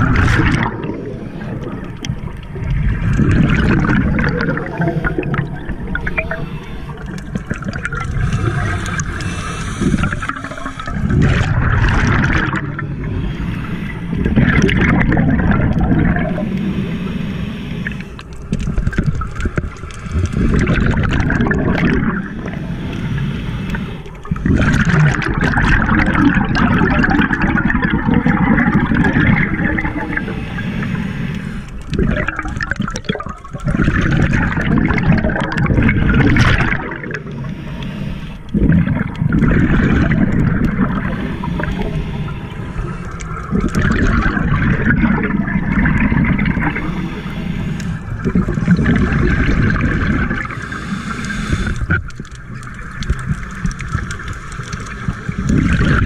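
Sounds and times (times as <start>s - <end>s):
scuba regulator breathing underwater: 0.0s - 52.4s
exhaled bubbles gurgling: 0.0s - 56.0s.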